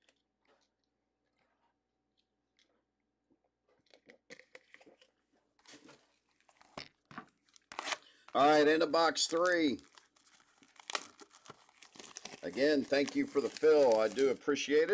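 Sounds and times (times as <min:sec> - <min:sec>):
mouth and handling noises: 0:00.0 - 0:14.9.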